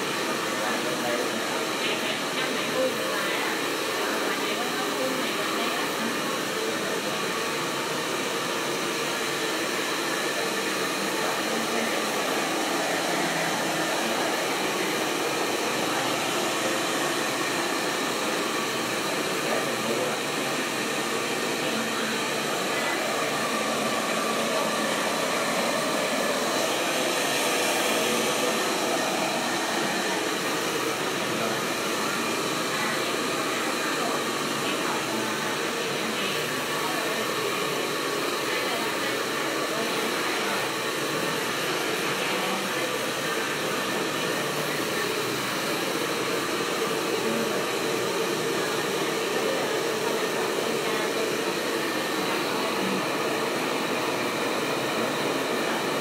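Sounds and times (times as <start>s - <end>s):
hair dryer running: 0.0s - 56.0s.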